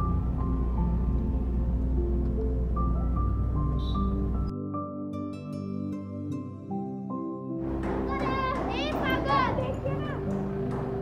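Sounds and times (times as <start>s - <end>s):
soft instrumental music: 0.0s - 11.0s
children calling out excitedly: 7.9s - 10.4s.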